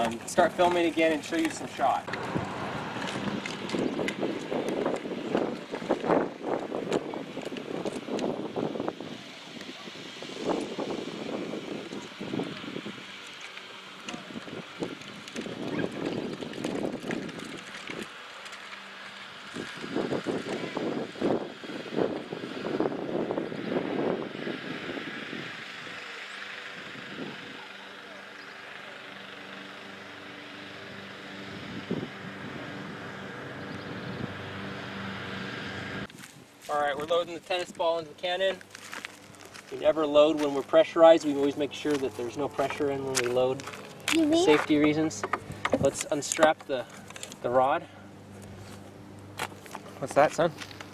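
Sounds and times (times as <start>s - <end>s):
toy wheels rolling over gravel: 0.0s - 8.3s, 11.8s - 20.9s, 36.1s - 47.6s.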